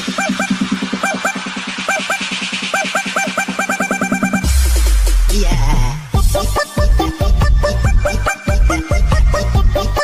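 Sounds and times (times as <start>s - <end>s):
rapid low bass pulse: 0.0s - 9.8s.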